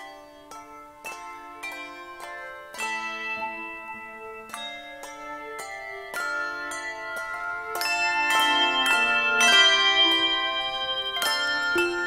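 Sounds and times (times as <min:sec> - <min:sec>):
handbell choir playing chords: 0:00.0 - 0:12.0.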